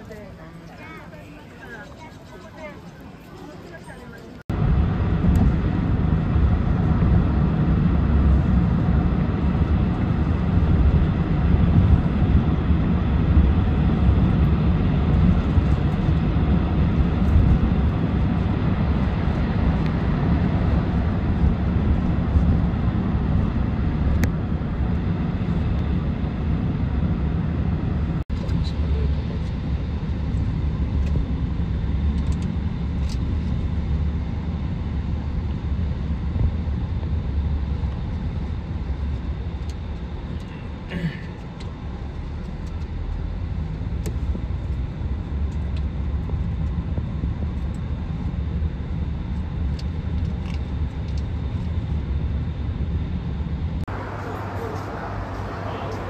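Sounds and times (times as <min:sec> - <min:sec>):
road and engine rumble in car: 0:04.4 - 0:56.0.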